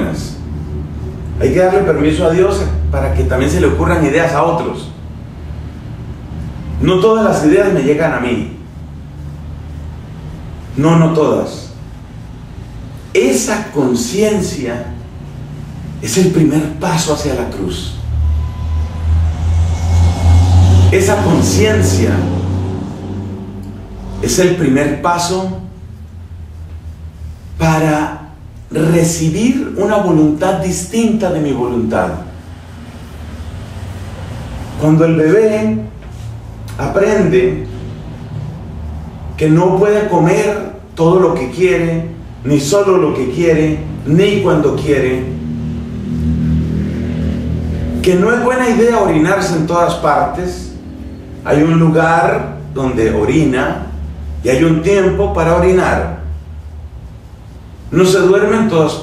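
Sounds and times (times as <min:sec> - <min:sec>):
loud low rumble: 0:13.8 - 0:59.0
steady low drone: 0:14.2 - 0:59.0.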